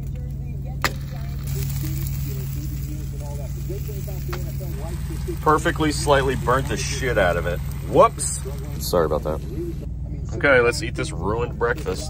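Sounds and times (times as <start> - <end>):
steady low hum: 0.0 - 12.0
food sizzling in a pan: 0.9 - 9.6.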